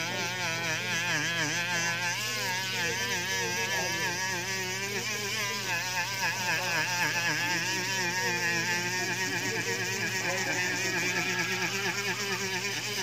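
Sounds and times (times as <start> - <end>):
rotary tool motor whine: 0.0 - 13.0.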